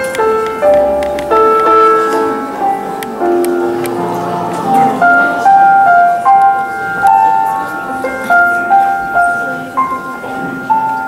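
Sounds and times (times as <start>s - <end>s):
electronic keyboard melody: 0.0s - 11.0s.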